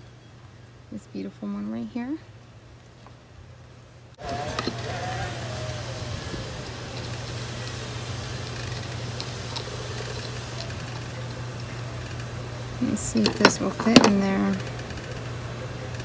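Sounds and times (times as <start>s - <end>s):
motor hum: 2.2s - 16.0s
faint whine sliding down: 4.2s - 16.0s.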